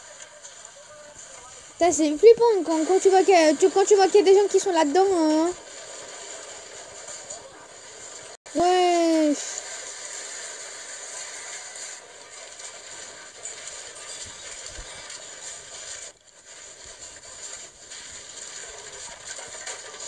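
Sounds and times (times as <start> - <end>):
shelves rattling in an earthquake: 12.2 - 20.0.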